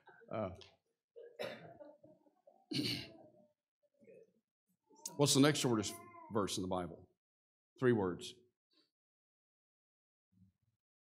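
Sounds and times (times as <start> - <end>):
man coughing: 1.2 - 1.8, 2.7 - 3.2.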